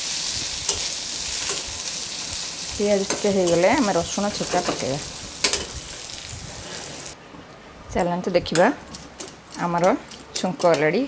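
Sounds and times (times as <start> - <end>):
onions sizzling in hot oil: 0.0 - 7.2.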